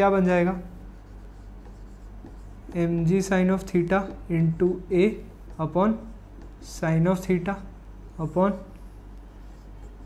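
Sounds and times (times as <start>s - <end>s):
low steady hum: 0.0s - 10.0s
marker scratching on whiteboard: 0.0s - 10.0s
man talking: 2.7s - 8.8s.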